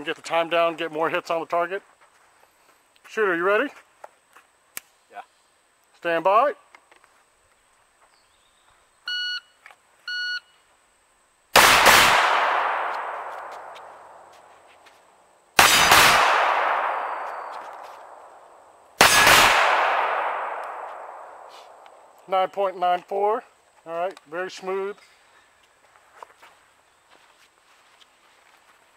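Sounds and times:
pistol shots: 11.6 - 14.3, 15.6 - 18.4, 19.0 - 21.9.

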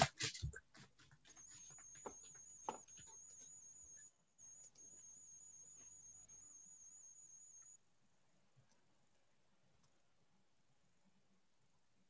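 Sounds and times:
faint high-pitched electronic whine: 1.3 - 12.0.

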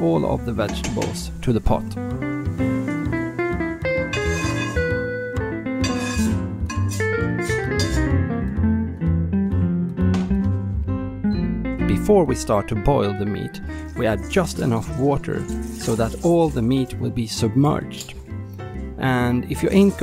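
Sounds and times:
instrumental background music: 0.0 - 20.0.

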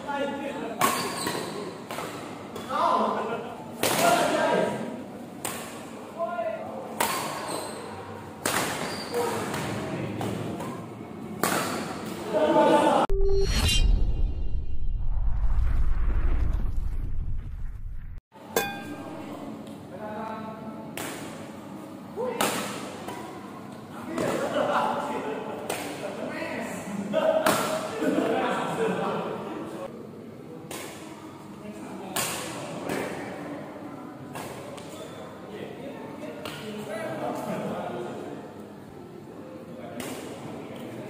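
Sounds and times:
rackets hitting shuttlecock: 6.9 - 7.5, 8.4 - 10.8, 11.4 - 12.2
deep rumbling sound effect: 13.1 - 18.2.

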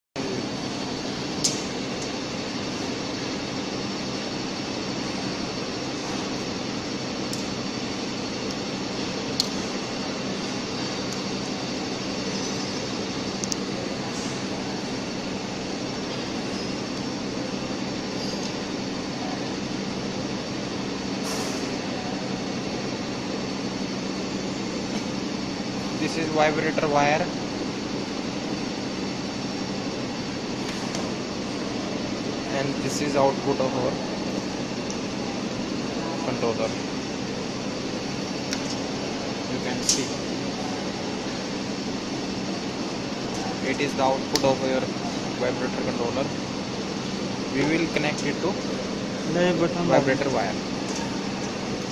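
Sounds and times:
machinery humming: 0.2 - 51.9.

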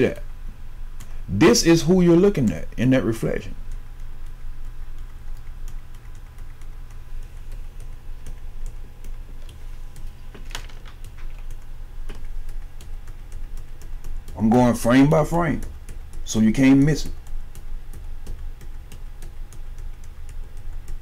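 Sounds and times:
low steady hum: 0.0 - 21.0
keyboard keys clicking: 3.7 - 21.0.

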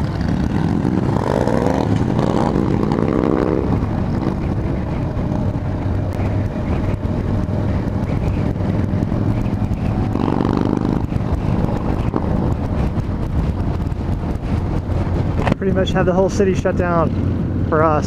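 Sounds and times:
motorcycle engines: 0.0 - 18.0
road noise: 0.0 - 18.0.

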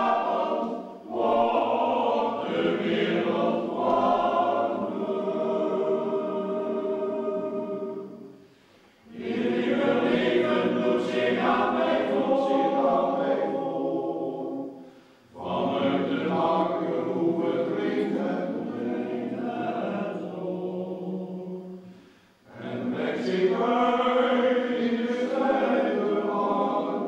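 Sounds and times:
men's choir singing: 0.0 - 8.4, 9.1 - 21.9, 22.5 - 27.0.

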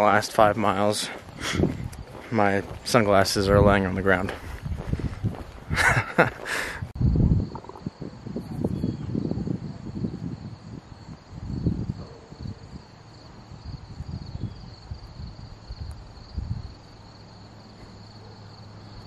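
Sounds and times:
wind buffeting microphone: 0.0 - 16.9
high-pitched insect chorus: 0.0 - 19.0.

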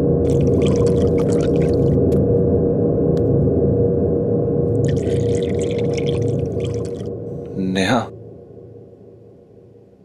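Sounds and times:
low droning score: 0.0 - 10.0.

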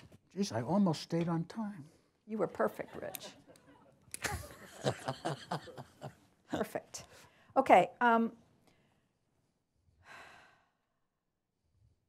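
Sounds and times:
person breathing: 10.0 - 11.0.

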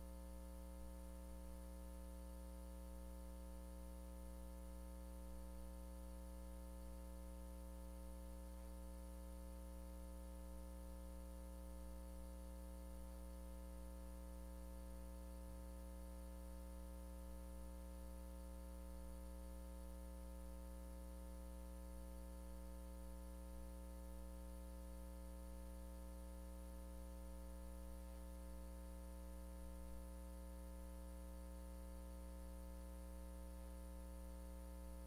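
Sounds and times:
electrical hum and buzz: 0.0 - 35.0.

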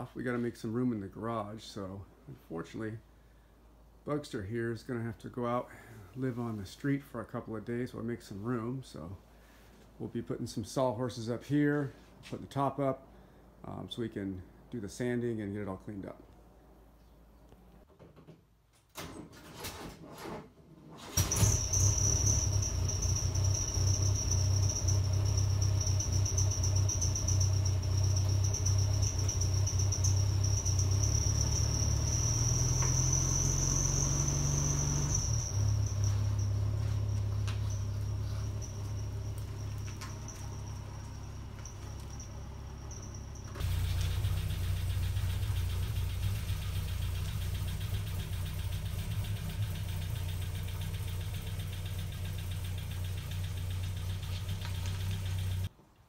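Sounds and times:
car engine idling and revving: 21.2 - 55.7
steady high tone: 21.3 - 43.7.

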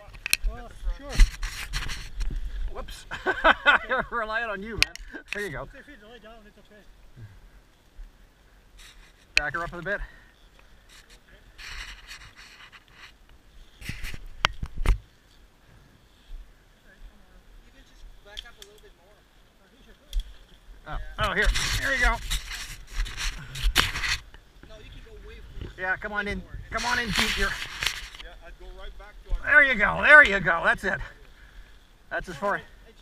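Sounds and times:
boots scraping on dirt and stones: 26.8 - 28.2.

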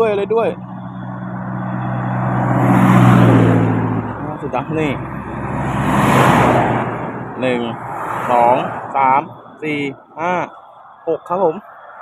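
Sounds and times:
tyre and engine rush: 0.0 - 12.0
vehicle engine hum passing: 0.0 - 12.0.

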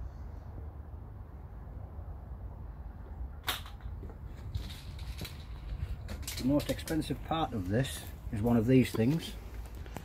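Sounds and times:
wind rumble on microphone: 0.0 - 7.4.

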